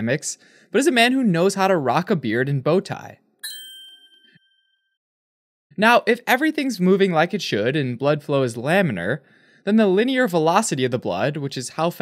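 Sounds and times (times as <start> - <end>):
bell-like ding: 3.4 - 4.9.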